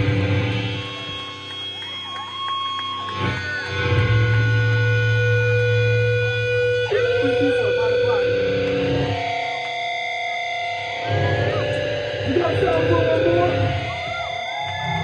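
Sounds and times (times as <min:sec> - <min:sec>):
distorted electric guitar chords: 0:00.0 - 0:15.0
low drone: 0:00.0 - 0:15.0.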